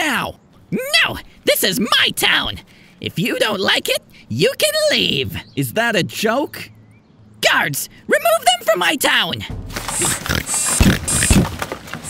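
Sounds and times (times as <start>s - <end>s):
cartoon pigs oinking: 9.9s - 11.5s.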